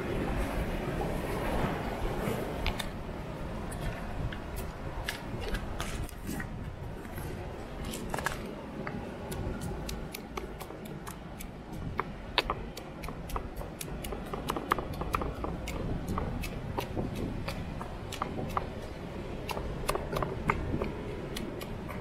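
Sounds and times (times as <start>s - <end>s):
low steady rumble: 0.0s - 22.0s
stone pestle pounding in mortar: 12.0s - 18.7s.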